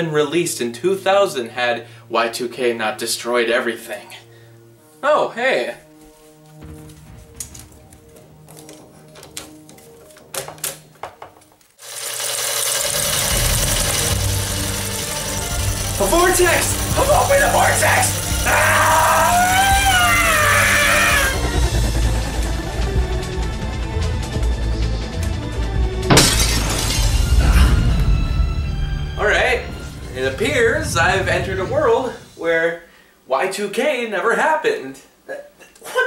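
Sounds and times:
music: 0.0 - 11.7, 12.5 - 32.4
film reel clicks and knocks: 7.4 - 11.7
glass shattering: 26.1 - 27.6
swirling vortex rushing noise: 29.2 - 32.7.

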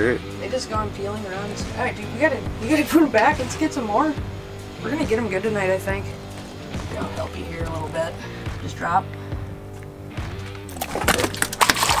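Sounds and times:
background music: 0.0 - 12.0
fish splashing in water: 10.6 - 12.0.

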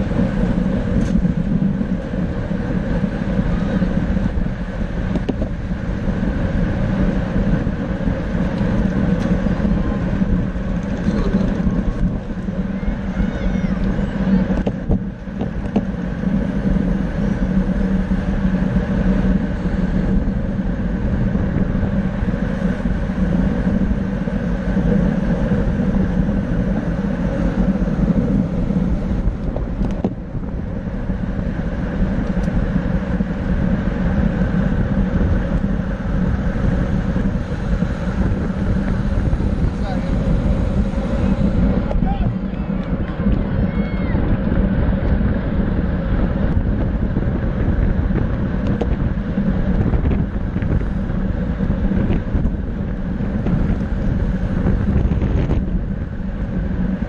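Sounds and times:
wind rush on microphone: 0.0 - 57.0.

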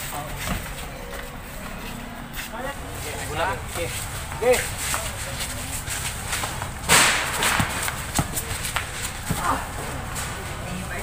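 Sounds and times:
basketball slap: 6.9 - 9.6
basketball knocks on concrete: 7.4 - 8.4.

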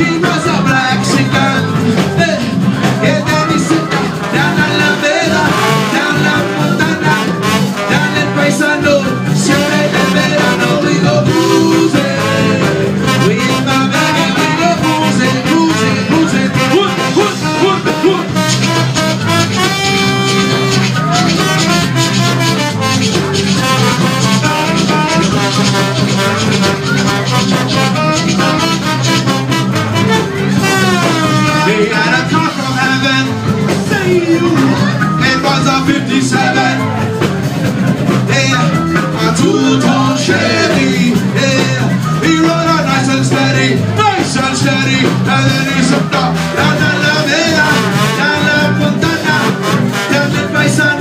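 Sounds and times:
brass horn lead: 0.0 - 51.0
guitar: 0.0 - 51.0
live latin band playing: 0.0 - 51.0
repeating bass line: 0.0 - 51.0.

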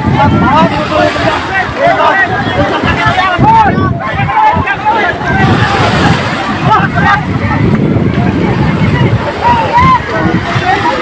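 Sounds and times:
surf washing in shallows: 0.0 - 11.0
voices calling out excitedly: 0.0 - 11.0.

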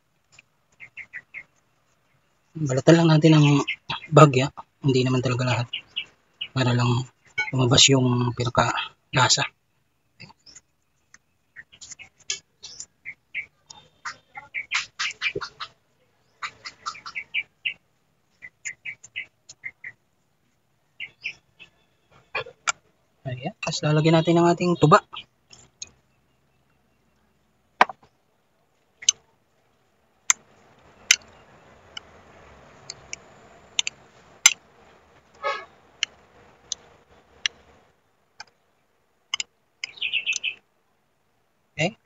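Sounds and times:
small bird chirping: 0.0 - 40.7.

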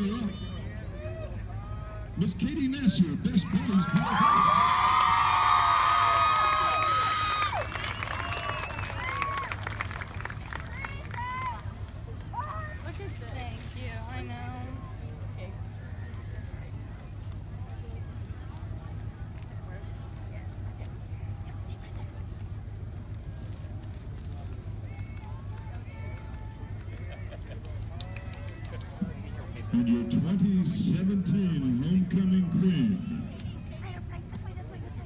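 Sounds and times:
crowd chatter: 0.0 - 35.0.

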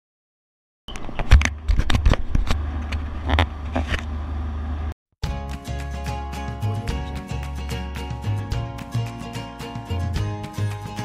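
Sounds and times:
music: 5.2 - 11.0.

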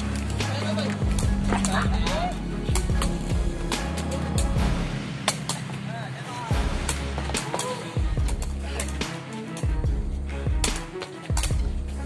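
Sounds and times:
voices: 0.0 - 4.6, 5.7 - 9.6
music with low bass line: 0.0 - 5.4, 6.4 - 12.0.

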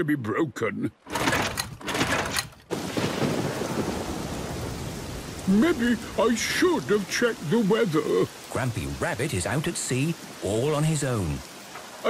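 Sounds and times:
heavy rain: 1.1 - 12.0.

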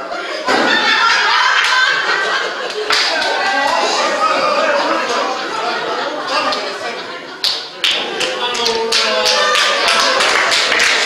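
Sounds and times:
voices: 0.0 - 11.0
sharp hand claps: 2.7 - 3.4, 7.4 - 11.0.

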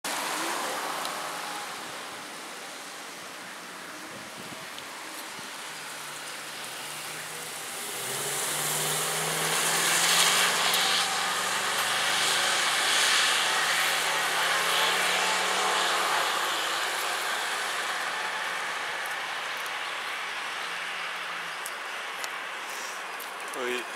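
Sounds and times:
tyre noise on road: 0.0 - 23.9.

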